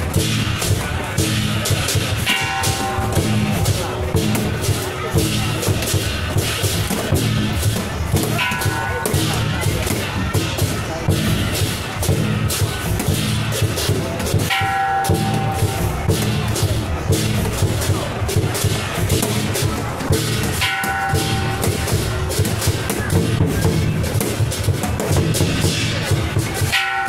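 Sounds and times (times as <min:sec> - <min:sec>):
crashing cymbals: 0:00.0 - 0:27.0
drum beaten in driving rhythm: 0:00.0 - 0:27.0.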